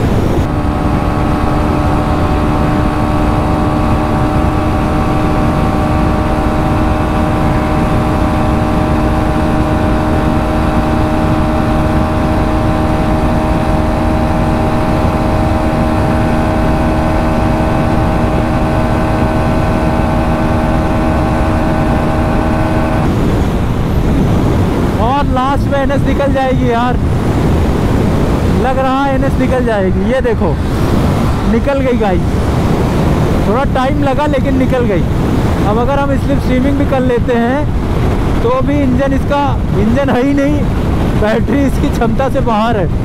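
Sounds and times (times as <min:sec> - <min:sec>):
motorcycle engine at full throttle: 0:00.0 - 0:43.0
wind rush: 0:00.0 - 0:43.0.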